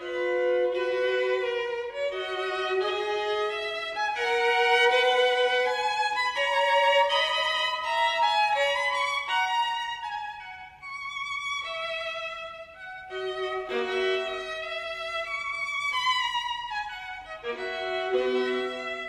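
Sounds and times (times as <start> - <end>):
violin melody: 0.0 - 19.0.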